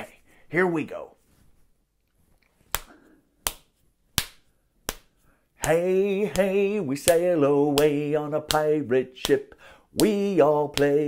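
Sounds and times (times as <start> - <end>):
hands clicking count-in: 2.7 - 9.4, 10.0 - 11.0
singing: 5.6 - 11.0.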